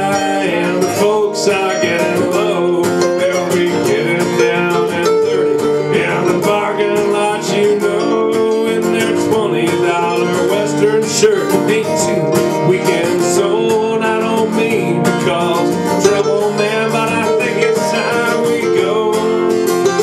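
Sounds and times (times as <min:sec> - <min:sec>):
acoustic guitars strumming: 0:00.0 - 0:20.0.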